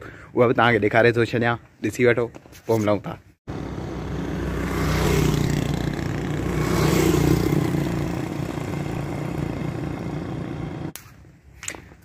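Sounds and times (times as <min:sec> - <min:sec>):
road noise: 0:03.5 - 0:11.0
vehicle engine running: 0:03.5 - 0:11.0.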